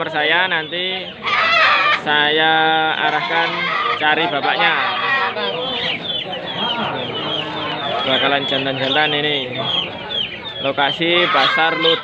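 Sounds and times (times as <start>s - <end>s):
chickens clucking: 0.0s - 12.0s
background voices: 2.0s - 12.0s.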